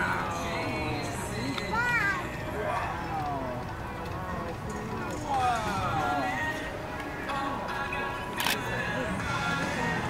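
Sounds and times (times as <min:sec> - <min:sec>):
background music: 0:00.0 - 0:10.0
camera shutter click: 0:08.4 - 0:08.6.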